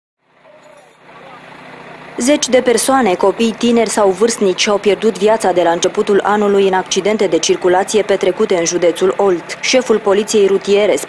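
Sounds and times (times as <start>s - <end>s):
roadside traffic noise: 0.2s - 11.0s
vehicle approaching: 0.2s - 11.0s
faint voices: 0.4s - 1.6s.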